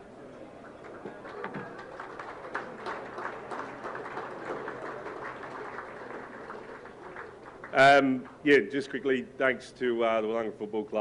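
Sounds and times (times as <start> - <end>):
audience applauding: 0.6 - 8.4.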